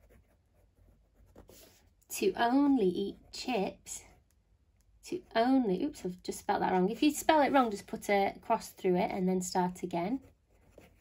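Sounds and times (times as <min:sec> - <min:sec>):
pen scratching on paper: 0:00.0 - 0:01.9.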